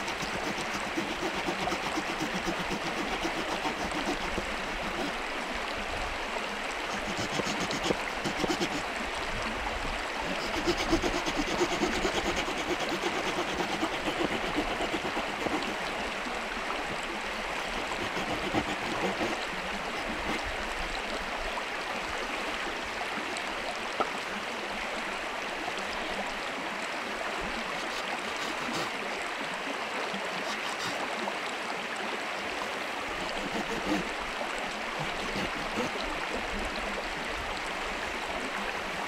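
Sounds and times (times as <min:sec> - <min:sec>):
stream water flowing: 0:00.0 - 0:39.0.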